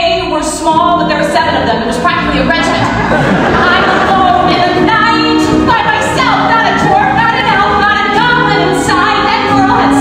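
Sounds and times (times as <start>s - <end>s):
musical accompaniment: 0.0s - 10.0s
woman belting a song: 3.6s - 10.0s.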